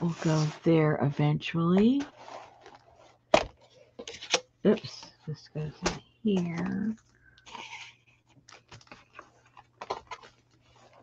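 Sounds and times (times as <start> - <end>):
paper being handled and shuffled: 0.0 - 1.0, 1.7 - 11.0.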